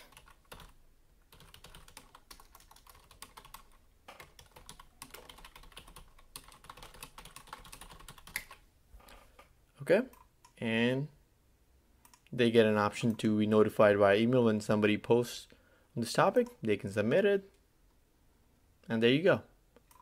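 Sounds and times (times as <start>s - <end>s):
typing on computer keyboard: 0.0s - 8.6s.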